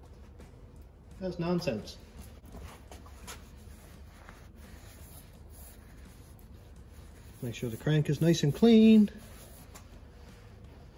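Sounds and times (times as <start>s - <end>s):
low steady hum: 0.0s - 10.9s
cloth rag rubbing metal: 2.6s - 10.9s.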